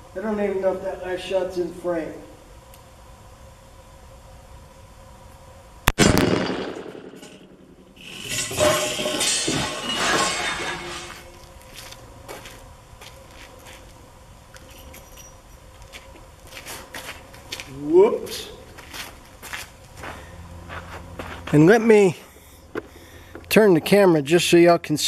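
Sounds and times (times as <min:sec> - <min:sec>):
revolver gunshot with echo: 0:05.9 - 0:07.7.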